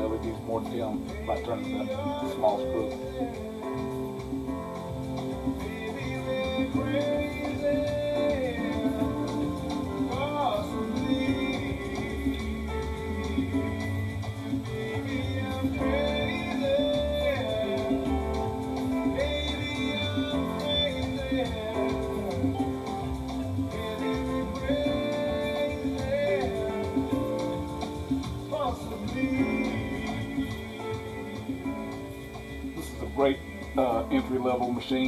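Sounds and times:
pop song through speakers: 0.0 - 35.0.

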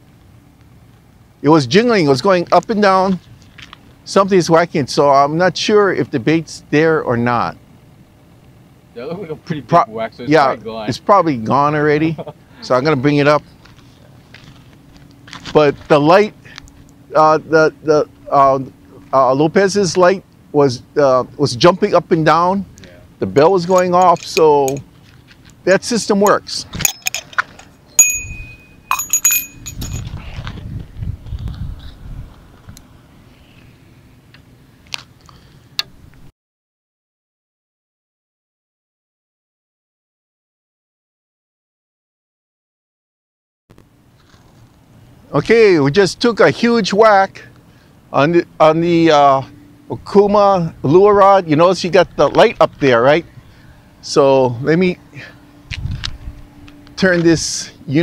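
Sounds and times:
fishing rod handling noise: 23.6 - 24.9
bite-alarm bell jingling: 23.7 - 24.9, 28.0 - 30.1.

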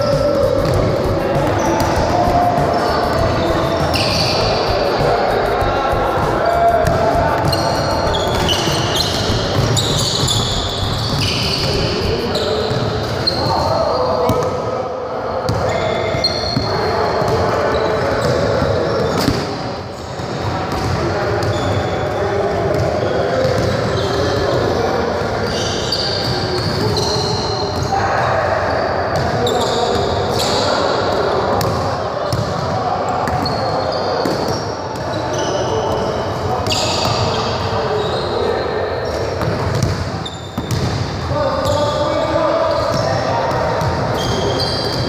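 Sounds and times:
basketballs bouncing on wooden floor: 0.0 - 13.3, 40.6 - 41.0
indistinct chatter: 0.0 - 45.0.

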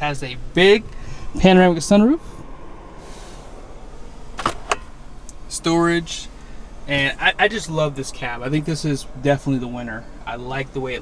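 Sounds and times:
truck cab interior hiss: 0.0 - 11.0.

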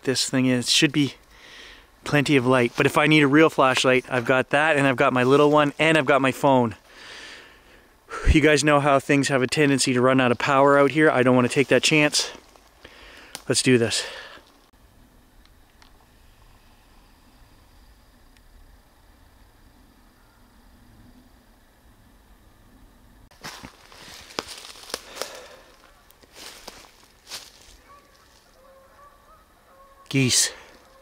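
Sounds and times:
geese honking faintly: 19.7 - 21.4, 25.0 - 31.0
sharp rustles or crunches: 23.3 - 28.6.

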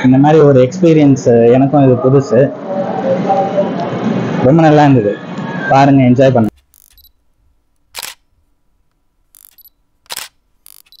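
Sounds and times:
sharp noise bursts: 6.4 - 8.4, 9.2 - 11.0.

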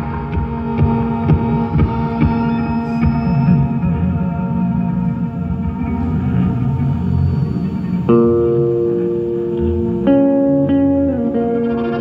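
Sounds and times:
band playing slow drone: 0.0 - 12.0.

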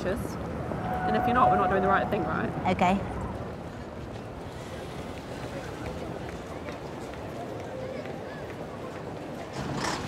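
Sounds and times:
indistinct voices of passers-by: 0.0 - 10.0
traffic hum: 0.0 - 10.0.

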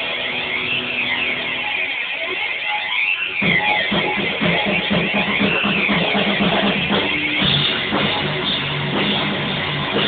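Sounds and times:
distorted electric guitar: 0.0 - 10.0
drums: 0.0 - 10.0
rock band playing live: 0.0 - 10.0.

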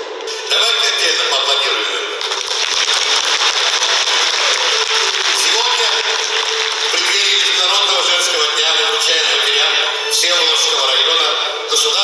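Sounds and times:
voice over sound system: 0.4 - 2.2
echoing music over sound system: 2.2 - 12.0.

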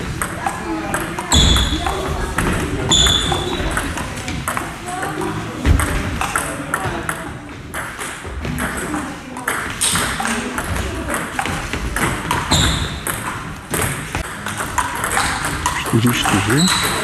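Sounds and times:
people talking: 15.6 - 16.8.

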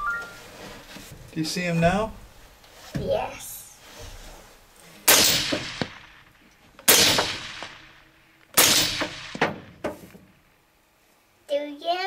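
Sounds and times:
gunshots ringing out: 5.1 - 6.2, 6.8 - 8.0, 8.6 - 9.8
sharp knocks: 8.6 - 10.2.

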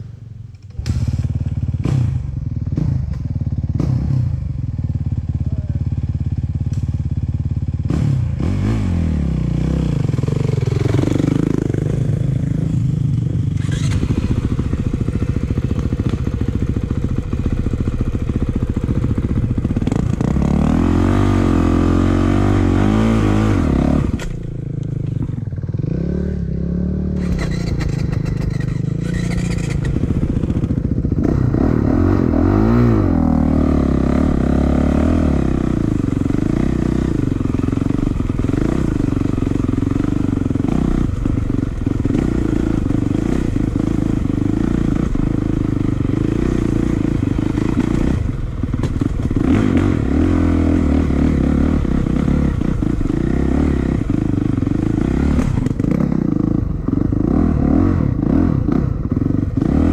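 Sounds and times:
dirt bike engine revving: 0.8 - 4.4, 7.8 - 24.4, 25.6 - 59.9.

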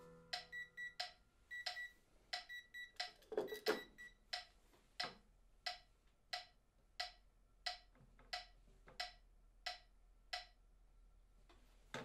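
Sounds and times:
piano notes: 0.0 - 0.9
digital metronome clicking: 0.3 - 10.6.

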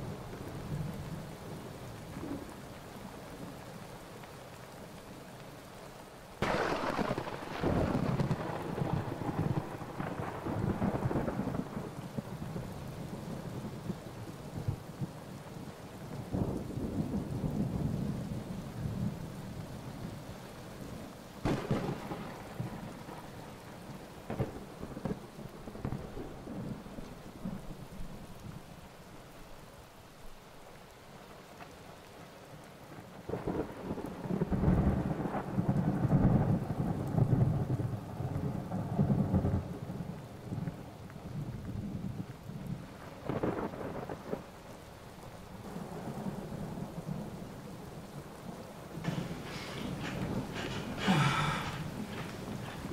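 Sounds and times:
rain: 0.0 - 52.9
sharp thunder crack: 6.4 - 12.0, 21.4 - 22.9, 49.0 - 52.9
thunder rumbling: 6.4 - 15.1, 21.4 - 28.2, 33.3 - 44.6, 45.4 - 52.9.

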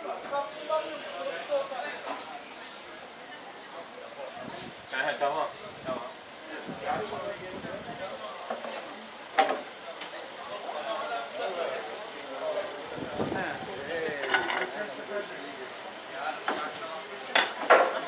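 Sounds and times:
passers-by talking: 0.0 - 18.0
street noise hiss: 0.0 - 18.0.

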